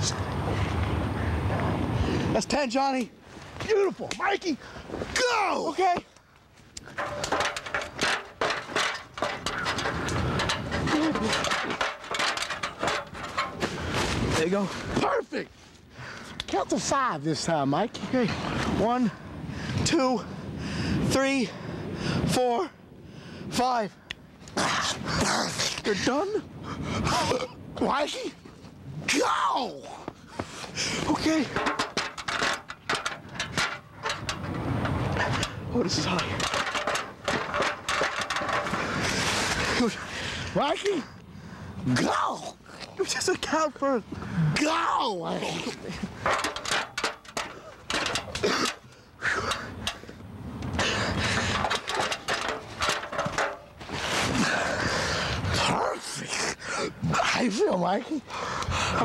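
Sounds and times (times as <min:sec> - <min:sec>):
beer cans clanking: 0:06.8 - 0:14.1, 0:31.1 - 0:39.0, 0:45.5 - 0:50.1, 0:50.7 - 0:54.0
wooden ladder knocking and creaking: 0:06.8 - 0:15.1, 0:30.4 - 0:39.9, 0:45.0 - 0:54.7.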